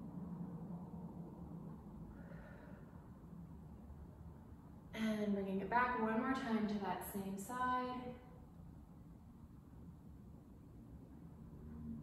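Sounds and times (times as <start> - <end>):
woman's soft breath out: 2.1 - 3.1.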